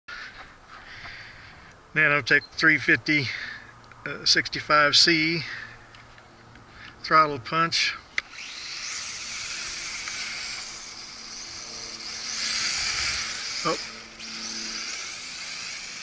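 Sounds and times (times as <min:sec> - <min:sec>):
drone propellers whining: 0:07.8 - 0:16.0.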